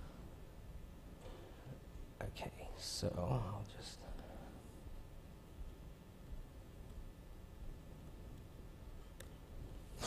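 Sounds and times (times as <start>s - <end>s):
man whispering: 2.2s - 4.6s.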